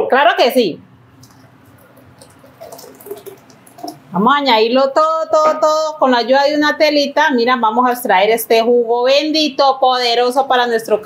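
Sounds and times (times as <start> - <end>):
liquid trickling and dripping: 1.1 - 4.2.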